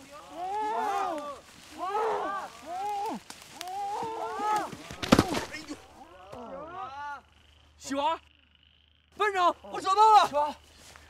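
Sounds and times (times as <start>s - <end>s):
frogs calling: 0.0s - 11.0s
sharp crack: 4.5s - 5.8s.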